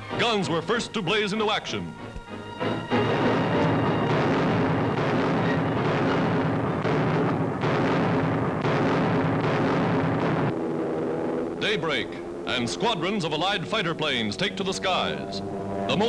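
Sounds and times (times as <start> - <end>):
heavy guns firing: 3.1 - 10.5.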